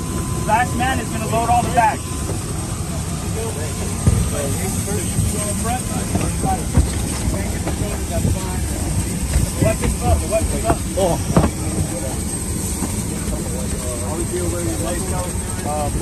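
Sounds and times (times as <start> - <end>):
helicopter rotor and engine: 0.0 - 16.0
high turbine whine: 0.0 - 16.0
gear knocking against cabin: 5.2 - 12.0.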